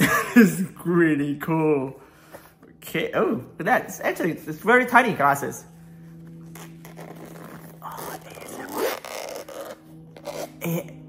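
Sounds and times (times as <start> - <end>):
case zipper pulled open: 6.4 - 10.9.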